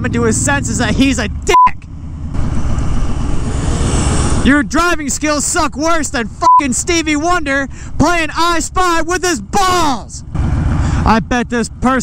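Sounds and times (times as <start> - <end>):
motorcycle engine running: 0.0 - 4.7.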